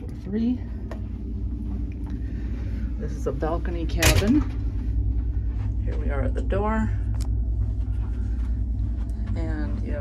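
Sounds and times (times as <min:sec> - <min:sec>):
low rumble of machinery and ventilation: 0:00.0 - 0:10.0.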